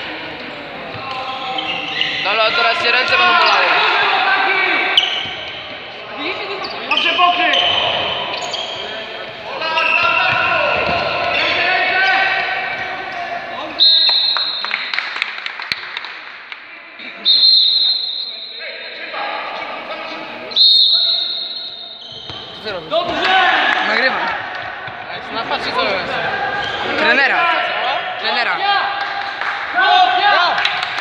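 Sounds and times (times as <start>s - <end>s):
referee's whistle blasts: 13.8s - 14.8s, 17.2s - 18.8s, 20.5s - 22.4s.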